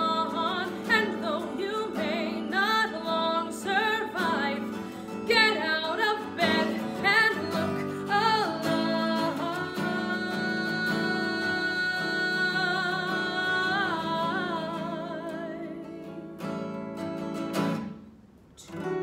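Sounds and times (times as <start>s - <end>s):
woman singing: 0.0s - 16.2s
acoustic guitar: 0.0s - 19.0s.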